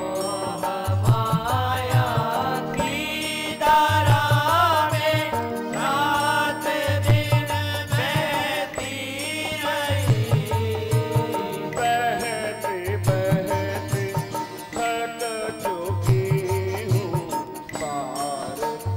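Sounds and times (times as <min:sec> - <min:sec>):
harmonium held notes: 0:00.0 - 0:18.9
person singing devotional chant: 0:00.0 - 0:18.9.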